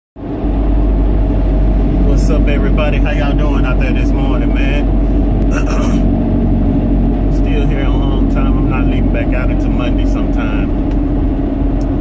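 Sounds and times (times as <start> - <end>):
road and engine rumble in car cabin: 0.2 - 12.0.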